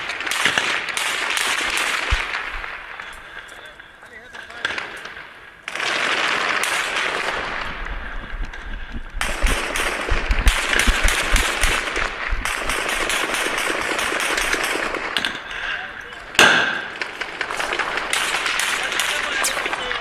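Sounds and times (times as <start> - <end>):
automatic gunfire: 0.0 - 3.4, 4.6 - 7.8, 9.2 - 15.4, 16.3 - 20.0.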